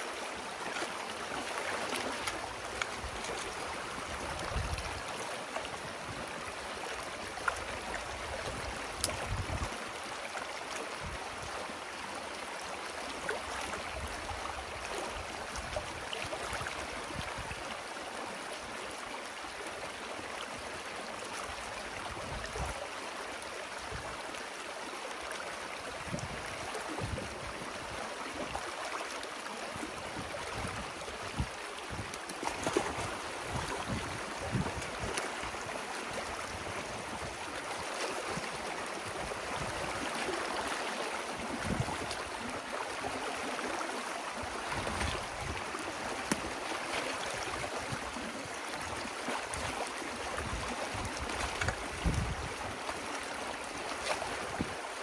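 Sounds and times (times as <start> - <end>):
water rushing and gurgling: 0.0 - 55.0.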